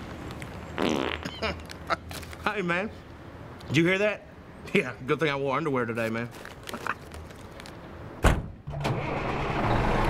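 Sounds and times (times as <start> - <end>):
loud thump: 8.2 - 8.6
truck engine starting and running: 8.3 - 10.0.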